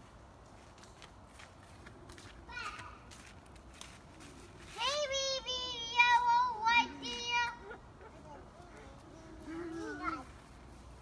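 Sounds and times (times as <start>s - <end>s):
faint outdoor background: 0.0s - 11.0s
child's high-pitched gliding voice: 4.7s - 10.4s.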